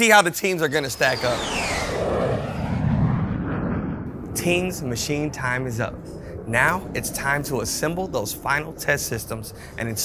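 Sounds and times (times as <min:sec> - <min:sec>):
downward whoosh: 0:00.9 - 0:07.1
low rumbling boom: 0:01.0 - 0:09.8.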